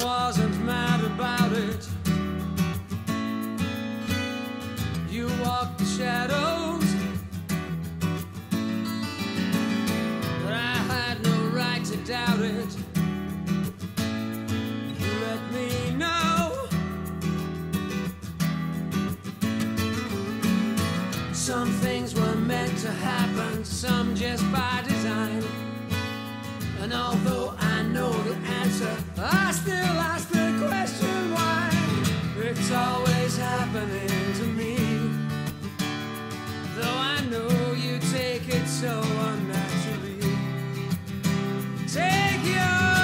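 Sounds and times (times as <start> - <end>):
male lead vocal: 0.0 - 2.0, 5.1 - 7.2, 10.4 - 12.9, 14.9 - 16.8, 21.2 - 25.6, 26.6 - 35.4, 36.8 - 40.6, 41.9 - 43.0
strummed acoustic guitar: 0.0 - 43.0
rock song with male vocal: 15.0 - 16.8, 21.3 - 25.6, 26.8 - 35.2, 36.8 - 40.4.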